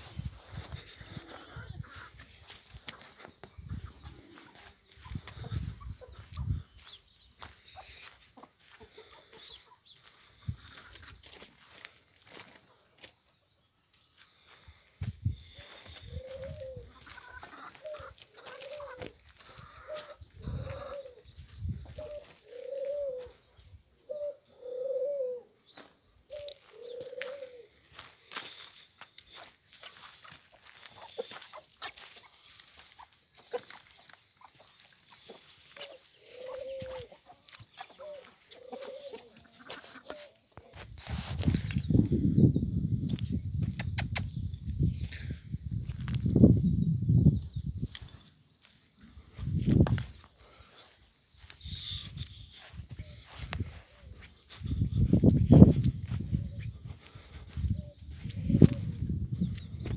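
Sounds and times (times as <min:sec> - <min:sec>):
bird calling: 0:15.6 - 0:21.3, 0:22.0 - 0:27.7, 0:33.0 - 0:40.8, 0:50.4 - 0:54.2.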